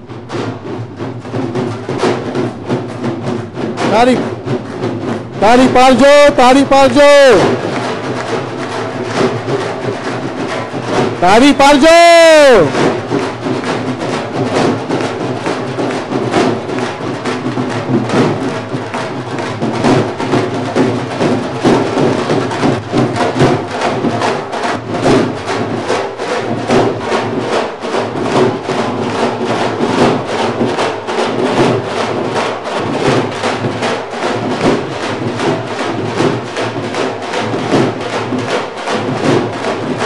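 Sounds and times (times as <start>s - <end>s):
dhol drums played fast: 0.0s - 40.0s.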